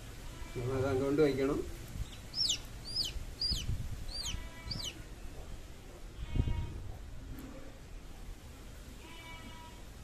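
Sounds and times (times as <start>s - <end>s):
chick peeping: 2.0s - 5.0s.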